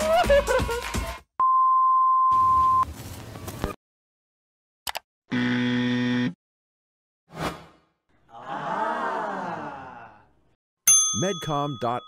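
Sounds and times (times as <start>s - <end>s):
music: 0.0s - 1.3s.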